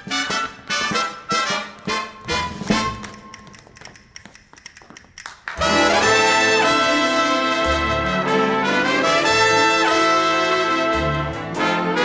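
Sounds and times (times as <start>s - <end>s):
brass band music: 0.0s - 3.2s, 5.6s - 12.0s.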